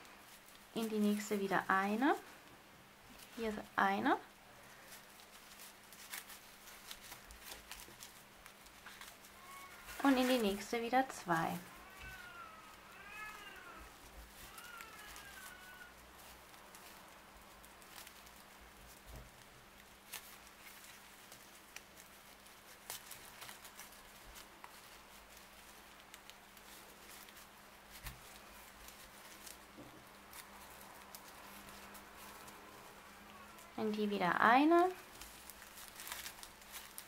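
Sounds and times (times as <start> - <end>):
cat meowing: 9.3 - 10.0, 11.6 - 16.0, 33.1 - 33.8.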